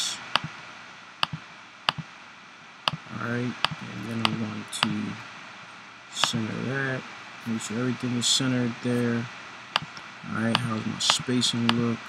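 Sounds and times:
computer mouse clicks: 1.2 - 2.1, 6.2 - 6.4, 9.8 - 11.8.

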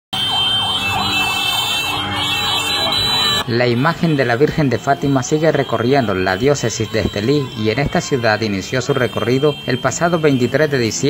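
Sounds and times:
fire truck siren yelping: 0.1 - 11.0.

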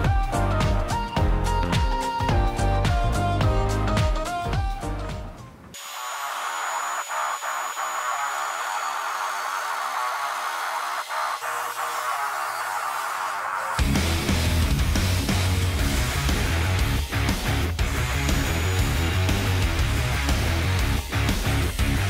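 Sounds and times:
background music: 0.0 - 5.8, 13.6 - 22.0
angle grinder cutting steel: 5.8 - 14.2, 15.4 - 21.6.

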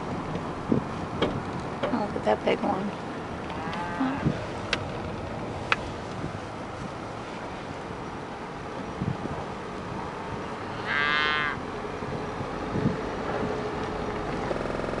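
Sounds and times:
steady background noise: 0.0 - 15.0
cow mooing: 3.6 - 4.3, 10.8 - 11.6.

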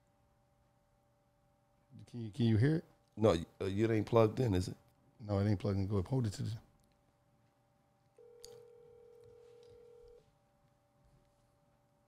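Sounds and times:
telephone ringback tone: 8.2 - 10.2.

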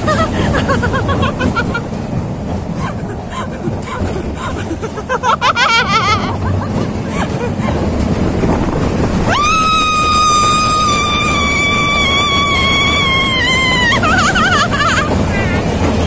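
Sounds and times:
roller coaster rumble and rush: 0.0 - 16.0
woman screaming: 9.3 - 15.0.

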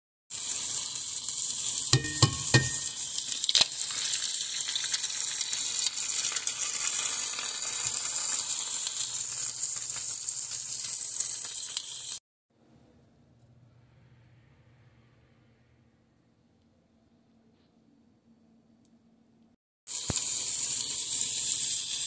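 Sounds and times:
food sizzling in oil: 0.3 - 12.2, 19.9 - 22.0.

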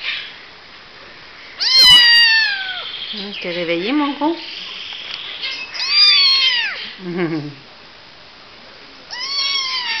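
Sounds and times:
kitten meowing: 1.6 - 2.9, 5.4 - 7.0, 9.1 - 10.0.

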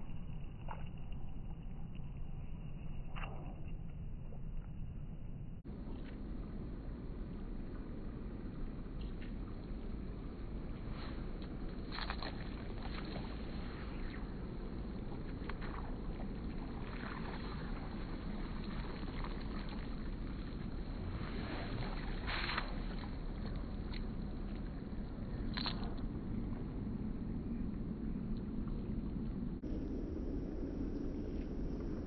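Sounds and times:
fly line swishing off water: 8.8 - 26.6.

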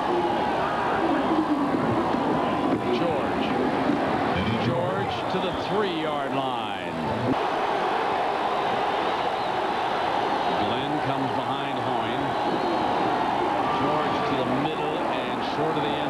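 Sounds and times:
stadium crowd roaring: 0.0 - 16.0.

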